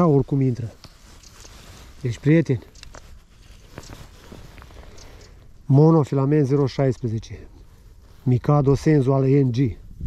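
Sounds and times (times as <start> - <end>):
outdoor background hiss: 0.0 - 10.0
fishing reel clicks and rustles: 2.3 - 5.5.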